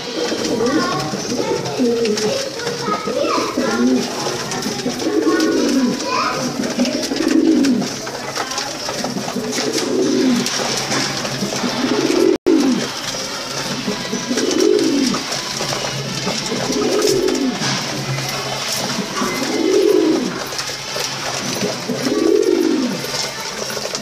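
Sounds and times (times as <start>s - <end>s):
pigeons cooing: 0.0s - 24.0s.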